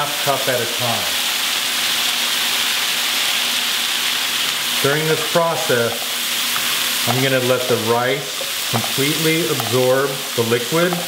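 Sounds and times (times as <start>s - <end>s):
stock sizzling in a hot pan: 0.0s - 11.0s.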